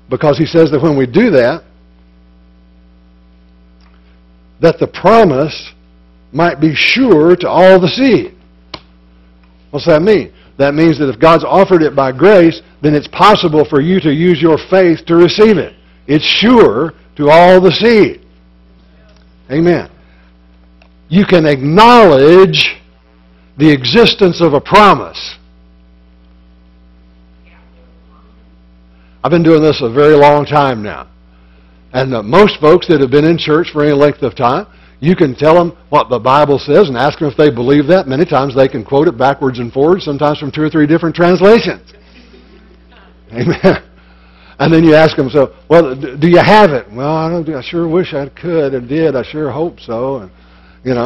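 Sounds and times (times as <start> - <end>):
electrical mains hum: 0.0 - 51.0.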